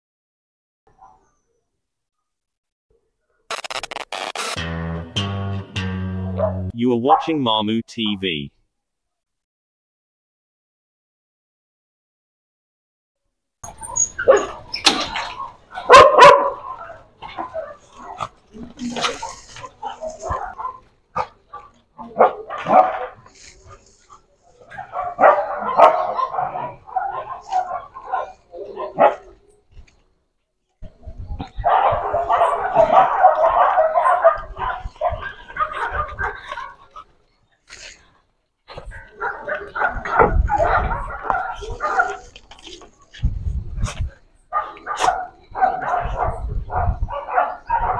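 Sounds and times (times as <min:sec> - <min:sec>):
dogs barking and whining: 0:06.2 - 0:07.2, 0:13.6 - 0:29.8, 0:31.0 - 0:37.9, 0:38.7 - 0:43.3, 0:43.9 - 0:47.9.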